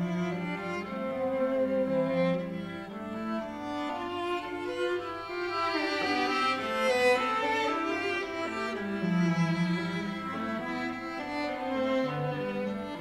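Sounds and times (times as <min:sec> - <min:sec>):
bowed cello: 0:00.0 - 0:13.0
bowed violin: 0:00.0 - 0:13.0.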